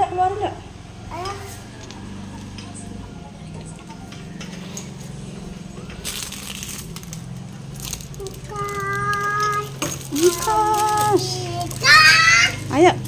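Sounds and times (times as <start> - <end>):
faint background music: 0.0 - 13.0
tinsel rustle: 6.0 - 12.7.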